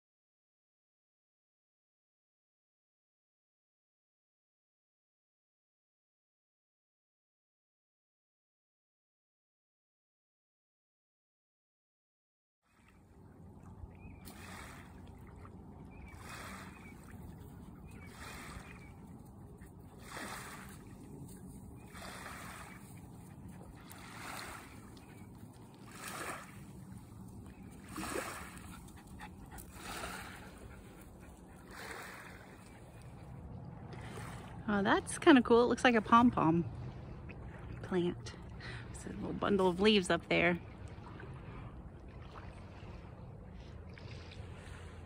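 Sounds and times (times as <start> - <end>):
small waves lapping on sand: 12.7 - 45.0.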